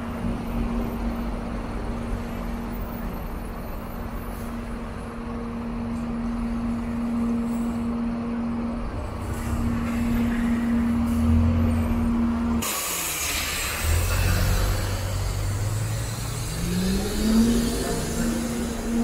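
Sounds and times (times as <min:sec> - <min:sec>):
bus engine hum: 0:00.0 - 0:19.0
trolleybus rumbling: 0:00.0 - 0:19.0.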